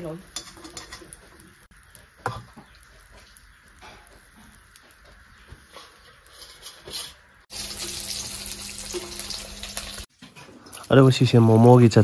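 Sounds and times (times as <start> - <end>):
tap water running into steel bowl: 7.5 - 10.1.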